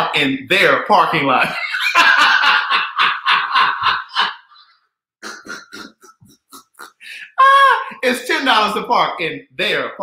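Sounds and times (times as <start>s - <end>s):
man wheezing laughter: 1.6s - 8.0s.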